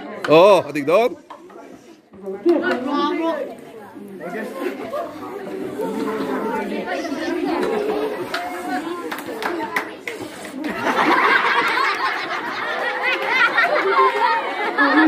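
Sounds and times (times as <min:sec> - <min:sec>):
crowd chattering: 0:00.0 - 0:15.0.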